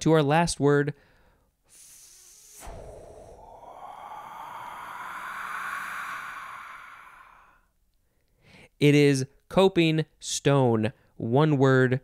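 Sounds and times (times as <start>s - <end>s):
rising noisy swell: 1.8s - 7.6s.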